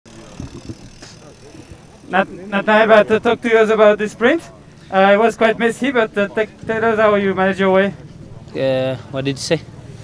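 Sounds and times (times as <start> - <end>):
faint voices: 0.1 - 10.0.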